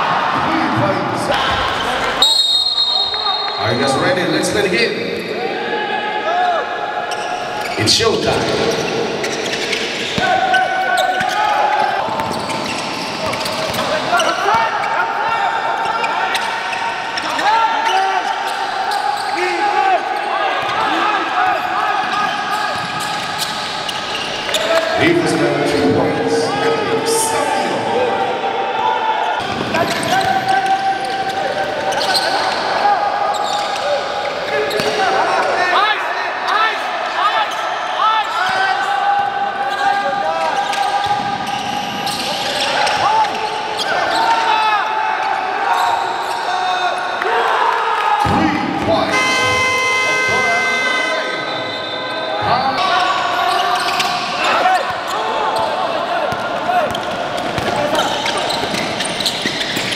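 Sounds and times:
players' voices: 0.0s - 59.9s
sneakers squeaking: 1.5s - 3.7s, 6.4s - 27.8s, 29.3s - 35.5s, 39.5s - 44.6s, 48.2s - 59.9s.

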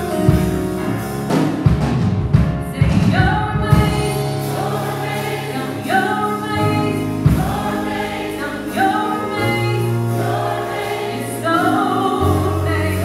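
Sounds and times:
live band bass and drums: 0.0s - 13.0s
choir singing: 3.8s - 13.0s.

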